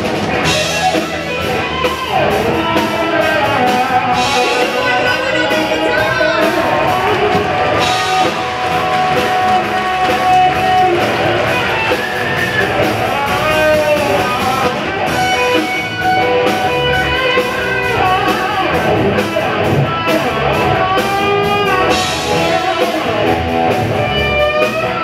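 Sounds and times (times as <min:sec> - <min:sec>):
bass guitar: 0:00.0 - 0:25.0
drums: 0:00.0 - 0:25.0
electric guitar lead lines: 0:00.0 - 0:25.0.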